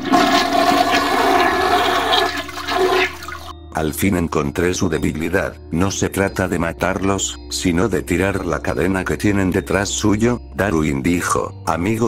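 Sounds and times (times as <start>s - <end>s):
toilet flushing: 0.0s - 3.5s.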